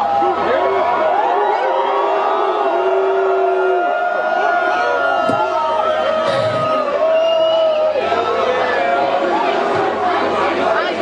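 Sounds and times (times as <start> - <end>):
crowd shouting and cheering: 0.0 - 11.0.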